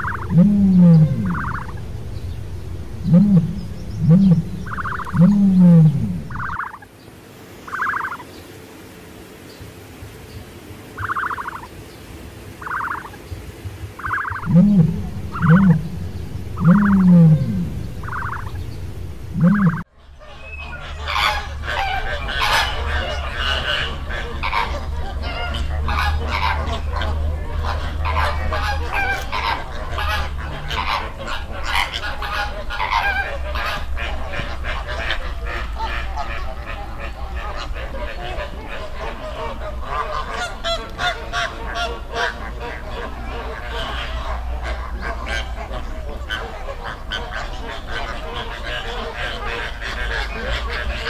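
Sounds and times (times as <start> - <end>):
emu grunting: 0.0 - 6.4, 14.4 - 19.8
emu rattling pulses: 0.0 - 6.8, 12.6 - 19.9
flamingos honking: 0.0 - 51.0.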